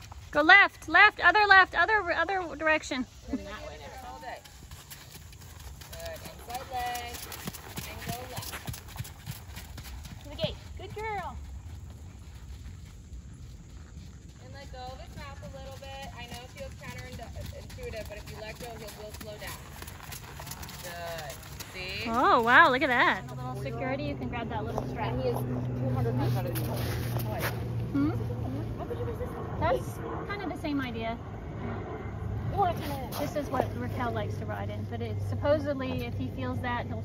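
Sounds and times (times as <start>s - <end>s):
hoofbeats on sand: 4.4s - 23.6s, 25.4s - 27.8s.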